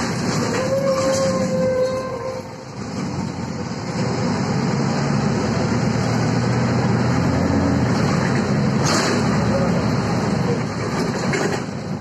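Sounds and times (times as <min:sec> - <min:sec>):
bus engine drone: 0:00.0 - 0:12.0.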